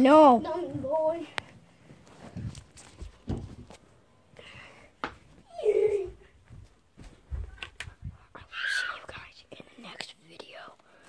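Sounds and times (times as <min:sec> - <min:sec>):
boy whispering: 0:08.3 - 0:11.0.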